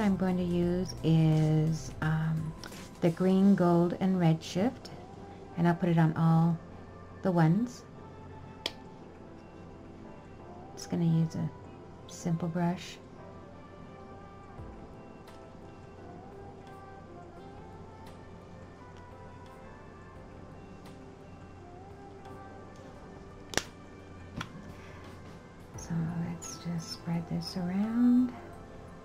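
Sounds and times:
faint background music: 0.0s - 29.0s
plastic bottle cap snapping shut: 23.5s - 23.8s.

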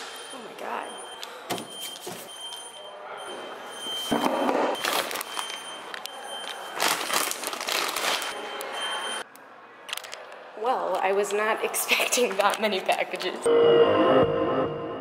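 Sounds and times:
plastic packages rustling: 4.8s - 8.5s, 9.9s - 10.3s.

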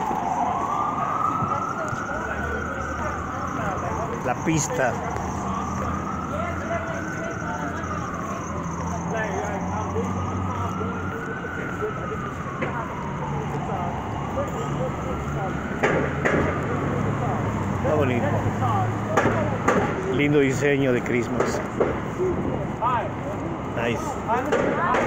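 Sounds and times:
city street traffic: 0.0s - 25.0s
emergency siren wailing: 0.0s - 25.0s.

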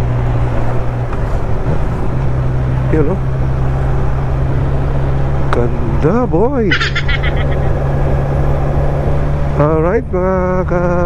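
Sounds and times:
motorcycle engine cruising: 0.0s - 11.0s
wind and road noise: 0.0s - 11.0s.

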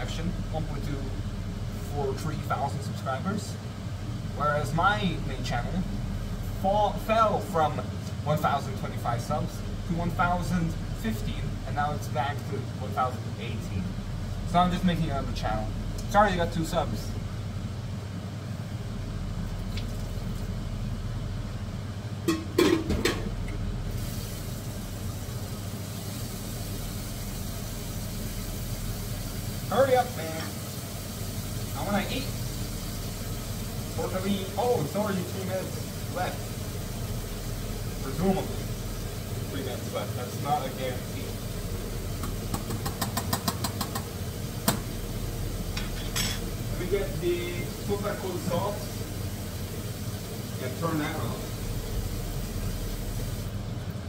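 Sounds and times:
pots boiling: 0.0s - 54.0s
range hood fan humming: 0.0s - 54.0s
metal spoon tapping a pot: 42.5s - 44.1s.

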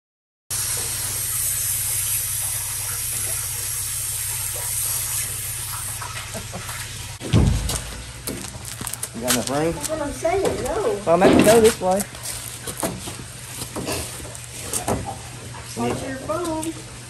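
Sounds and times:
pressure washer spraying water: 0.5s - 13.0s
loud low thump: 7.2s - 9.0s.

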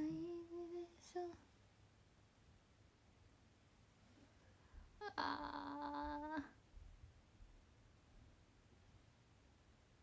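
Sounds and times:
girl humming: 5.0s - 6.6s.

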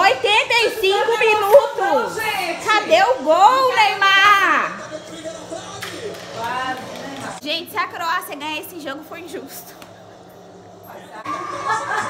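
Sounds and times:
stadium crowd noise on television: 0.0s - 12.0s.

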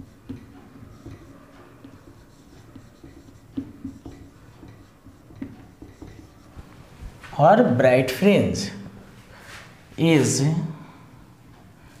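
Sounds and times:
marker pen writing on whiteboard: 0.0s - 7.8s.

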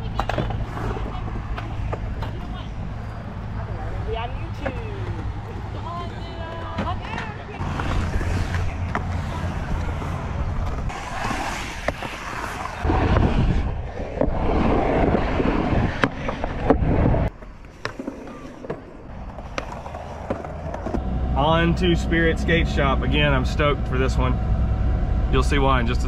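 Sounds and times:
skateboard clacks: 0.0s - 2.7s
skateboard wheels rolling on concrete: 0.0s - 24.7s.

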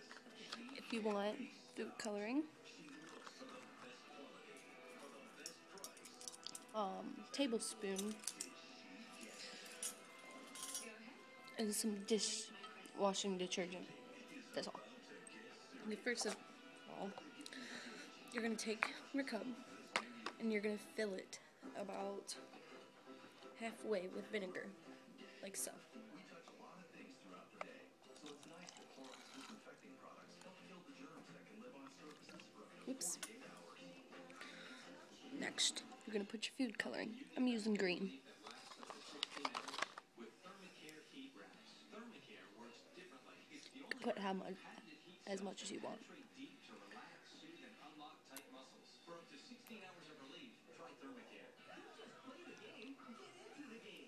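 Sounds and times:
faint background music: 0.0s - 54.0s
faint background voices: 0.0s - 54.0s
liquid pouring into glass jar: 28.1s - 29.7s.

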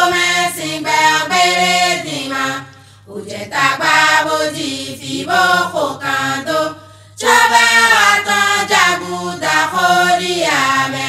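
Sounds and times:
person singing chant-like melody: 0.0s - 11.0s.

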